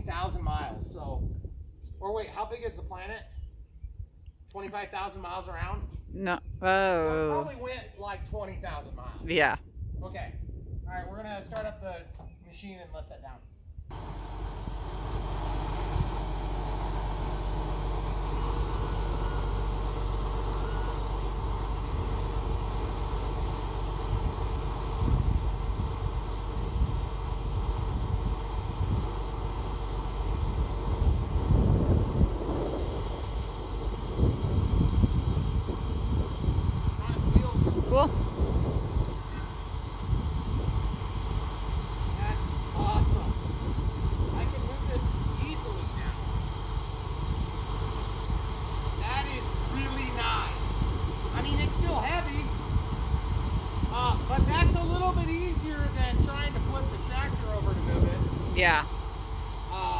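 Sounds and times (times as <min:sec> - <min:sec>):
truck engine running: 0:13.9 - 0:59.9.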